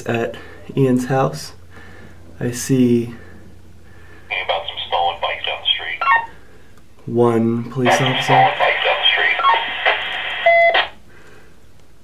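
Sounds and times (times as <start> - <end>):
radio transmission hiss: 4.3 - 6.4, 7.8 - 11.0.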